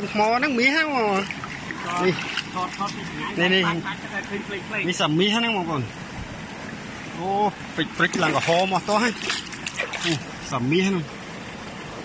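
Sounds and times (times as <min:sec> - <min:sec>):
river water flowing: 0:00.0 - 0:12.0.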